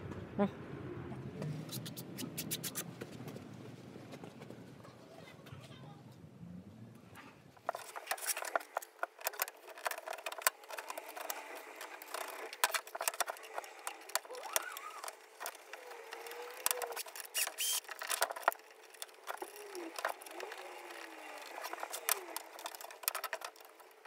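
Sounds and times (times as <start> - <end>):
wooden parts clicking and knocking: 7.6 - 24.0.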